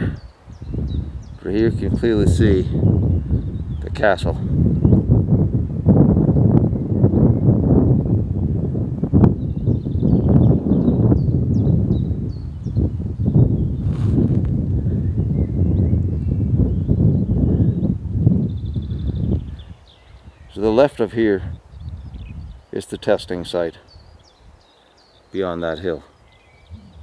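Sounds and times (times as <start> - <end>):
small birds chirping: 0.0 - 5.4, 6.3 - 27.0
wind buffeting microphone: 0.0 - 27.0.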